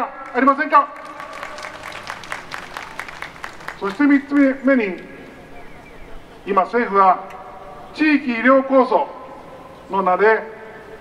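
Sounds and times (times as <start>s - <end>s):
crowd applauding: 0.2s - 4.5s.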